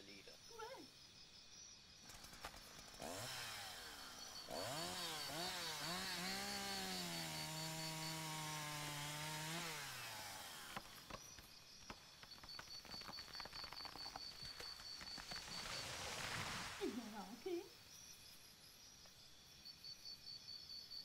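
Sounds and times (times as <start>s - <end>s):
chainsaw revving and running: 2.1s - 11.2s.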